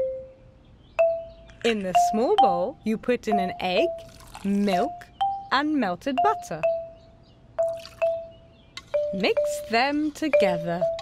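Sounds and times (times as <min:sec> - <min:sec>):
cartoon dripping plinks: 0:01.0 - 0:07.0, 0:07.6 - 0:09.8.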